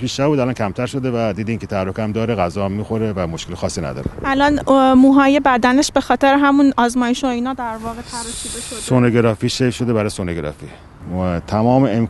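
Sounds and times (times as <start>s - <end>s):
person speaking: 7.6s - 9.1s
steady hiss: 7.6s - 9.8s.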